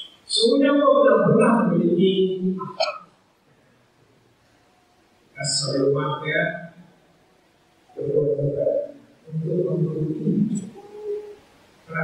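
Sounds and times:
man speaking into a microphone: 0:00.2 - 0:02.9, 0:05.4 - 0:06.9, 0:08.0 - 0:10.8.

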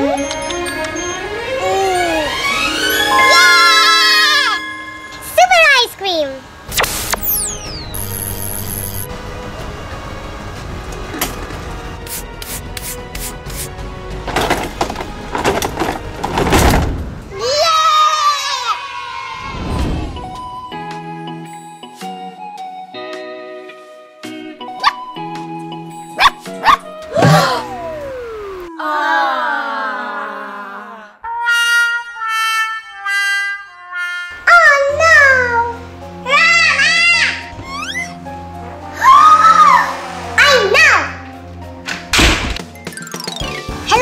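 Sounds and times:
background music: 0:00.0 - 0:17.6, 0:19.5 - 0:28.8, 0:31.2 - 0:44.0
bursts of noise: 0:06.7 - 0:09.1
comic sad trombone cue: 0:31.2 - 0:35.9.

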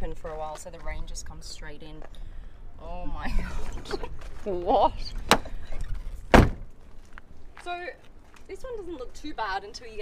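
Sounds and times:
car door slamming: 0:06.3 - 0:06.7.

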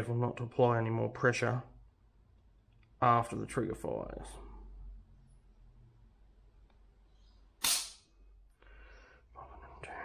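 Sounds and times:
sharp trigger snap: 0:07.6 - 0:08.1.

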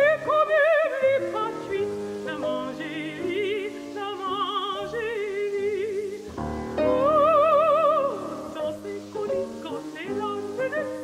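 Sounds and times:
piano chords: 0:00.0 - 0:11.0
woman singing folksong: 0:00.0 - 0:11.0.

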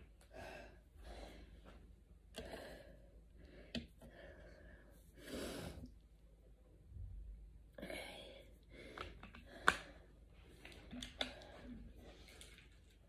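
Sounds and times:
woman breathing hard: 0:00.0 - 0:06.0.

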